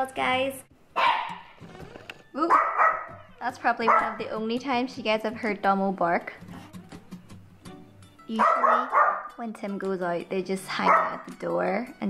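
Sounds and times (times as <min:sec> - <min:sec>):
dog barking: 0:01.0 - 0:01.5, 0:02.4 - 0:03.2, 0:03.8 - 0:04.2, 0:08.4 - 0:09.4, 0:10.8 - 0:11.3.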